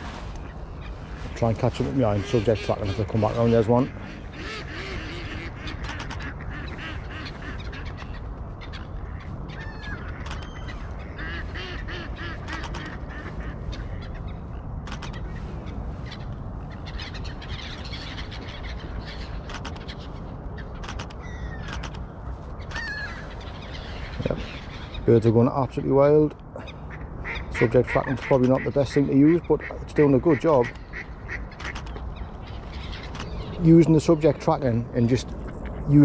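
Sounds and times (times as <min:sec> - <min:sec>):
ducks quacking: 0:00.0 - 0:15.2, 0:26.6 - 0:32.1
gulls crying: 0:00.0 - 0:36.0
sharp clicks: 0:20.8 - 0:22.0, 0:31.6 - 0:32.0.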